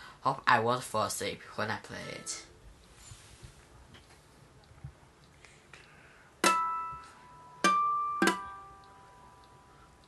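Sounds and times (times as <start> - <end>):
ukulele plucked chords: 6.4 - 9.7.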